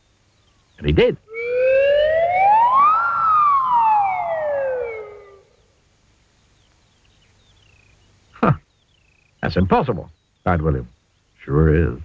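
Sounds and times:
cartoon slide whistle tone: 0:01.3 - 0:05.4.

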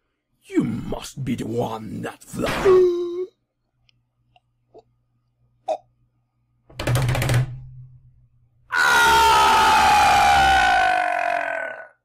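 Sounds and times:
person screaming: 0:08.7 - 0:12.0.

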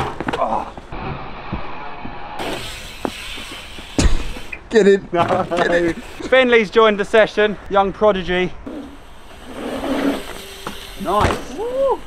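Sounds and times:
bikes landing and rattling: 0:00.0 - 0:01.0, 0:02.4 - 0:06.2, 0:08.7 - 0:12.0
bike tyres rolling on dirt: 0:02.4 - 0:04.6, 0:08.7 - 0:12.0.

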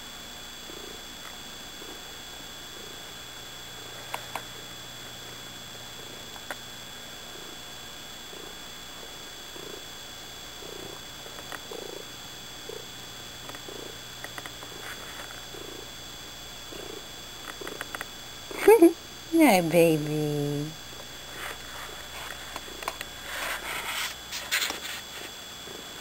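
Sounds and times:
cat purring: 0:00.6 - 0:01.1, 0:01.7 - 0:04.7, 0:07.2 - 0:16.0, 0:16.6 - 0:18.7, 0:25.6 - 0:26.0.

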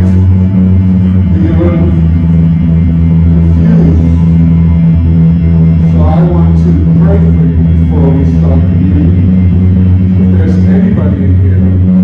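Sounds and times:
electric bass guitar low notes: 0:00.0 - 0:12.0
worship band music: 0:00.0 - 0:12.0.

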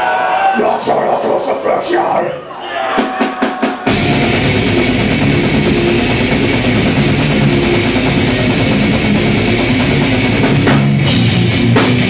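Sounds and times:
death metal band playing live: 0:03.0 - 0:12.0.

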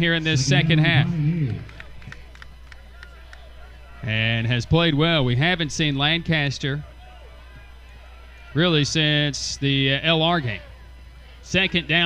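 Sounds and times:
man's voice: 0:00.0 - 0:01.7
distant crowd ambience: 0:00.0 - 0:12.0.

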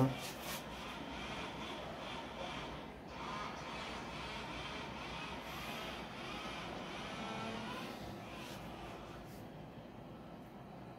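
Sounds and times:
faint steady background noise: 0:00.0 - 0:10.9.

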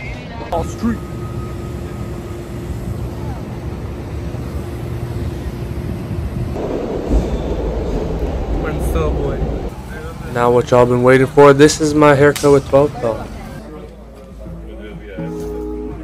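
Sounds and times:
city street traffic hum: 0:00.0 - 0:16.0
deep rumble: 0:01.0 - 0:09.8.

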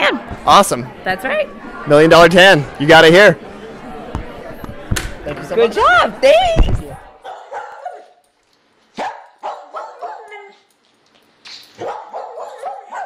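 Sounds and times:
dog barking and yipping: 0:07.2 - 0:08.2, 0:09.0 - 0:10.7, 0:11.8 - 0:13.0.

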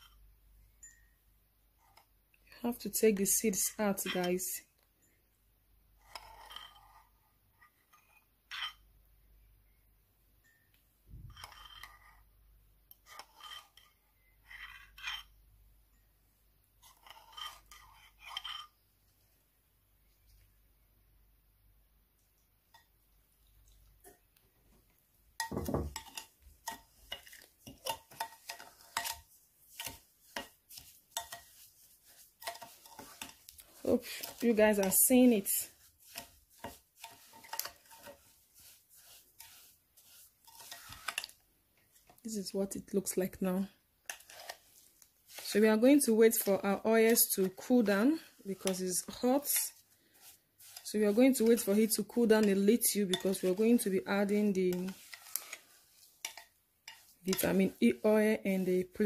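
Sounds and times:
spoon stirring gritty grounds: 0:00.0 - 0:09.0, 0:10.4 - 0:20.6, 0:22.1 - 0:59.0
metal spoon clinking on bowls: 0:25.4 - 0:38.3, 0:56.2 - 0:57.8.

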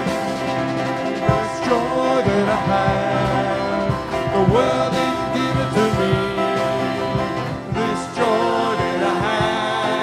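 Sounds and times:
acoustic guitar: 0:00.0 - 0:10.0
keyboard: 0:00.0 - 0:10.0
low bass notes: 0:00.0 - 0:10.0
people singing: 0:00.0 - 0:10.0.

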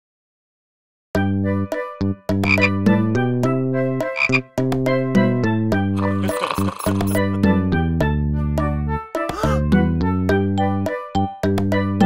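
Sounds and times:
cartoon frog croaks: 0:02.4 - 0:02.7, 0:04.2 - 0:04.4, 0:06.0 - 0:07.4.

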